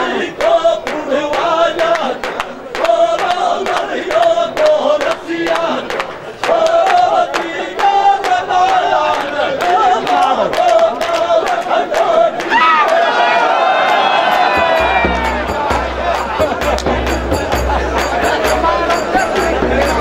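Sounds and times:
crowd voices singing along: 0:00.0 - 0:20.0
men chant-singing: 0:00.0 - 0:20.0
frame drum beating: 0:14.3 - 0:20.0.

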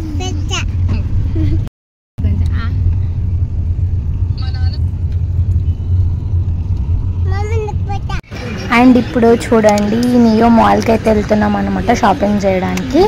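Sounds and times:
car engine and road rumble: 0:00.0 - 0:13.0
voices: 0:04.3 - 0:04.9, 0:07.2 - 0:13.0.

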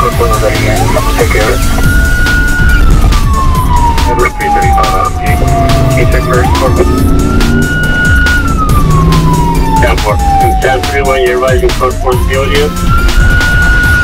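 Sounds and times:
music with steady beat: 0:00.0 - 0:14.0
police siren wailing: 0:00.0 - 0:14.0.

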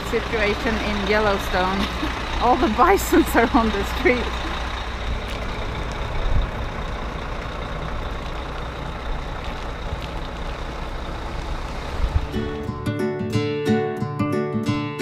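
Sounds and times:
traffic rumble and hiss: 0:00.0 - 0:12.7
acoustic guitar music: 0:12.0 - 0:15.0.

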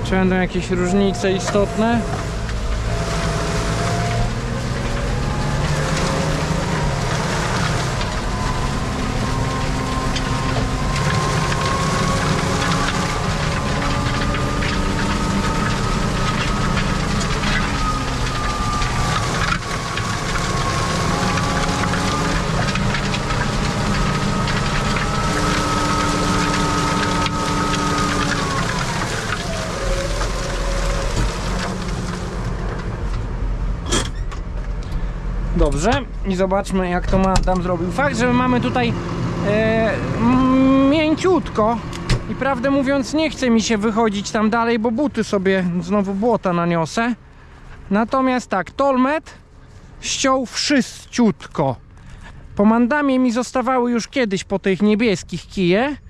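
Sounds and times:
drivetrain whine: 0:00.0 - 0:56.0
tractor diesel engine under load: 0:00.0 - 0:56.0.

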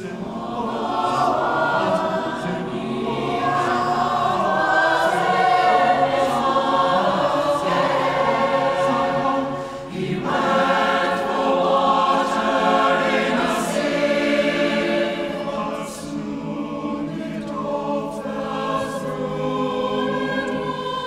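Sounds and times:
choir singing a cappella: 0:00.0 - 0:21.0.

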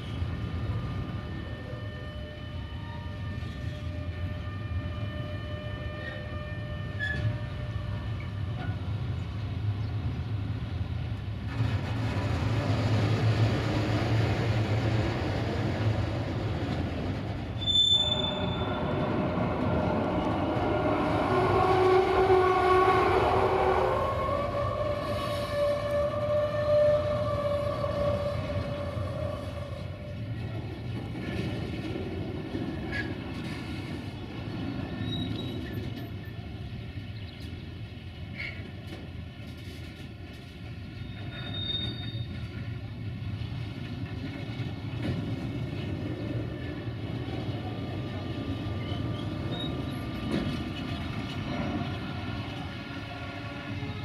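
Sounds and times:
freight wagons rumbling past: 0:08.8 - 0:54.0
short high squeaks: 0:17.6 - 0:19.0, 0:41.0 - 0:42.4.

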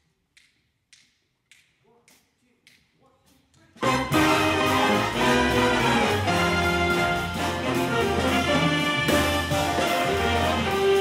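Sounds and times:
jazz big band with brass: 0:03.8 - 0:11.0.

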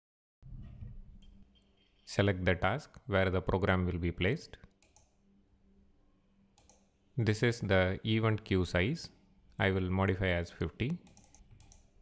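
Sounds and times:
computer mouse click: 0:04.7 - 0:05.2, 0:06.6 - 0:06.9, 0:11.0 - 0:11.9.

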